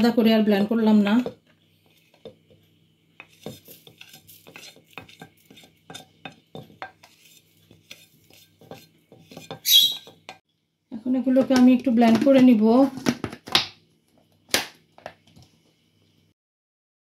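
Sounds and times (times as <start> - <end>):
spatula scraping and tapping bowl: 1.2 - 10.4.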